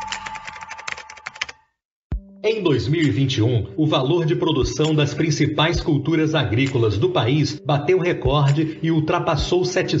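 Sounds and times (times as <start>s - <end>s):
rapid typing clicks: 0.0s - 1.6s.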